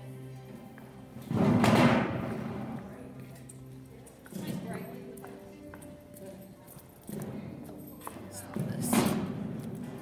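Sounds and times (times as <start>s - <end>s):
faint voices murmuring: 0.0s - 10.0s.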